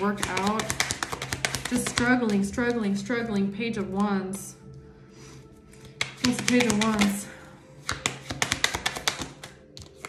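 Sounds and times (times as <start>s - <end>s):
cards being shuffled: 0.1s - 2.8s, 5.8s - 7.2s, 7.8s - 10.0s
card taps: 5.8s - 7.2s, 7.8s - 10.0s.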